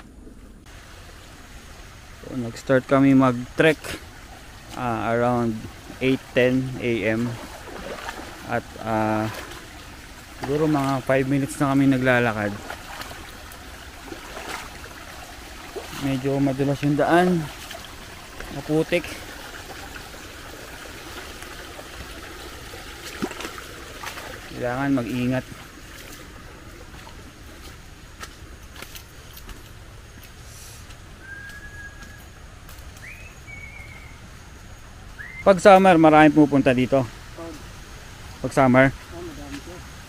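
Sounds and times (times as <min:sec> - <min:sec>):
stream flowing over rocks: 0:00.6 - 0:31.2
bird whistling notes: 0:31.2 - 0:32.4, 0:33.0 - 0:34.3, 0:35.1 - 0:35.5.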